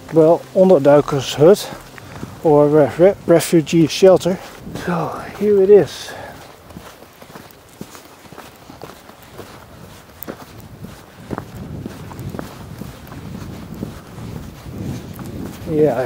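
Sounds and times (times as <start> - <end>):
footsteps on sandy path: 0.0 - 16.0.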